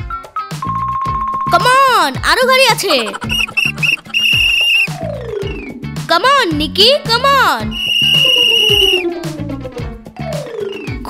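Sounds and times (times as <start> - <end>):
background music: 0.0 - 11.0
toy police whistle blast: 3.2 - 5.0, 7.7 - 9.1.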